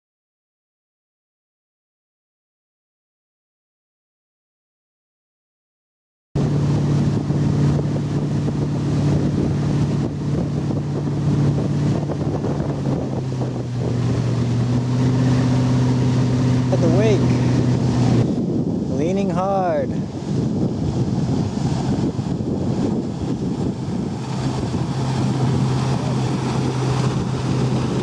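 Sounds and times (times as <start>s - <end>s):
motorboat engine running: 6.4s - 28.0s
wind buffeting microphone: 6.4s - 28.0s.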